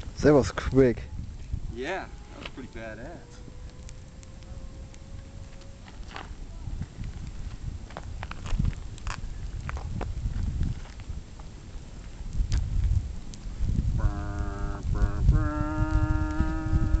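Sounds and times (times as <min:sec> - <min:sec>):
faint crackles: 0:00.0 - 0:17.0
wind rumbling on microphone: 0:00.0 - 0:17.0
steady pitched horn tone: 0:14.0 - 0:17.0.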